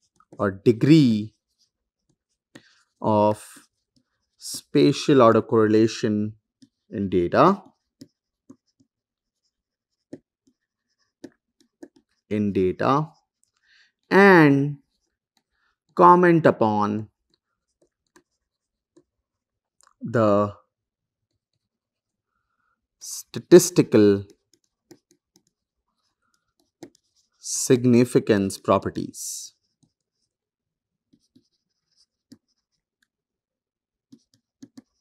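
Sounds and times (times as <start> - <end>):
stylus scratching on pen tablet: 0.0 - 20.0, 20.6 - 35.0
stylus tapping on tablet: 7.4 - 9.0, 10.0 - 12.3, 17.2 - 19.2, 24.2 - 25.6, 26.2 - 27.3, 31.1 - 33.2, 34.1 - 35.0.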